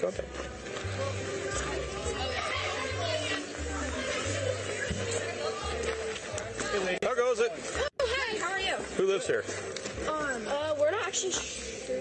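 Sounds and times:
music with low bass line: 0.0s - 7.0s
indistinct voices and chatter: 0.0s - 12.0s.

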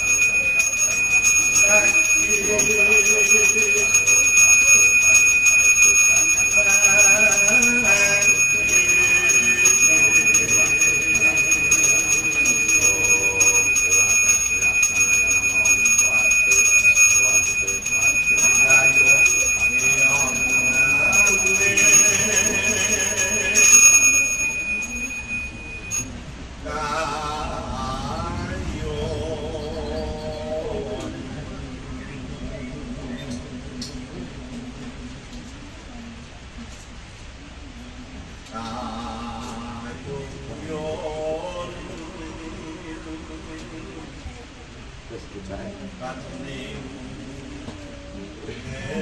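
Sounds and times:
hand bell ringing: 0.0s - 26.1s
man chanting: 1.3s - 23.8s.

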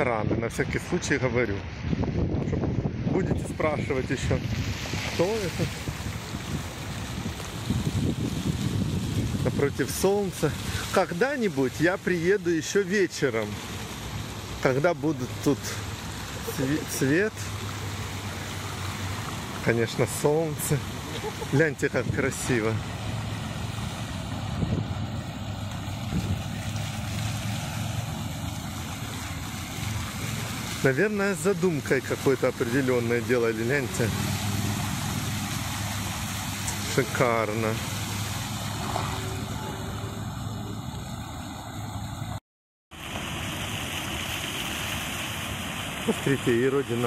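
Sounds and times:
fountain water splashing: 0.0s - 47.0s
low steady rumble: 20.7s - 31.9s
faint voices: 38.8s - 40.9s.

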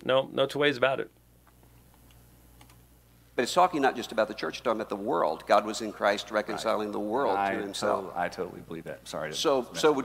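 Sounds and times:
low steady hum: 0.0s - 10.0s
computer keyboard clicks: 2.0s - 2.8s.

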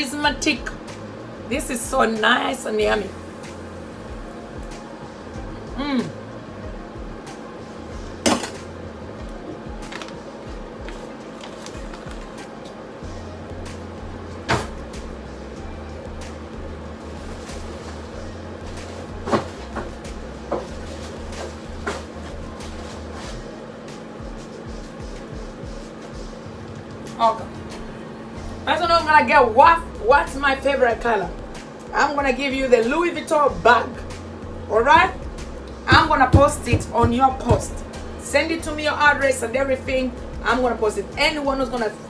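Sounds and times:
faint background music: 0.0s - 42.0s
steady low hum: 0.0s - 42.0s.

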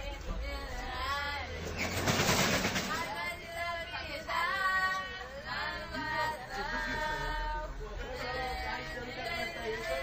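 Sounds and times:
people talking and calling out: 0.0s - 10.0s
loud rushing noise: 1.4s - 3.1s.

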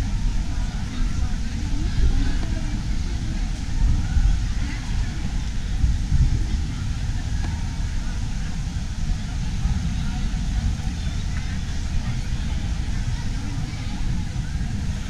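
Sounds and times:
steady low rumble: 0.0s - 15.0s.

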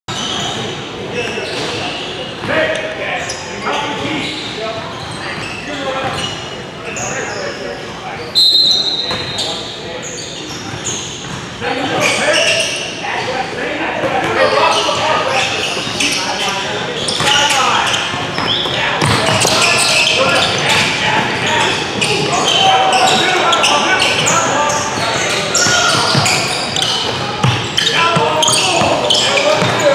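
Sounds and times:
chatter of people: 0.1s - 29.9s
people calling out in a gym: 0.1s - 29.9s
basketball bouncing on court: 18.3s - 19.6s, 25.5s - 29.9s
basketball bouncing on wooden floor: 19.0s - 19.5s, 29.6s - 29.8s.

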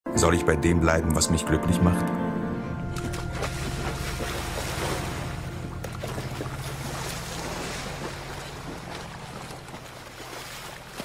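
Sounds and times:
steady low tone: 1.0s - 10.9s
water splashing and churning: 2.9s - 11.0s.

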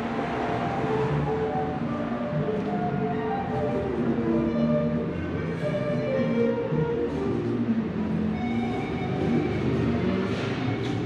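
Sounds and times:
music with sustained notes: 0.0s - 11.0s.

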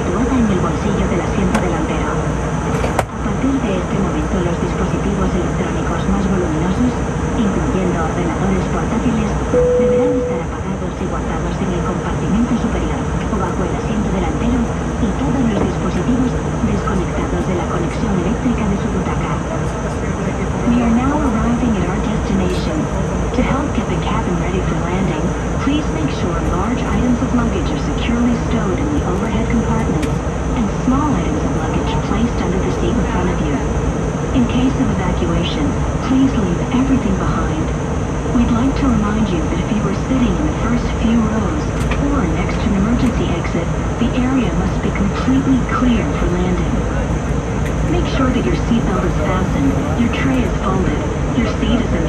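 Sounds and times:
airliner cabin noise: 0.0s - 52.0s
passengers murmuring: 0.0s - 52.0s.

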